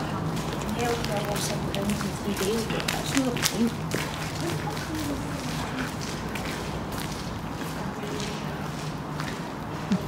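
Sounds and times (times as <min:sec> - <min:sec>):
footsteps on stone paving: 0:00.0 - 0:10.0.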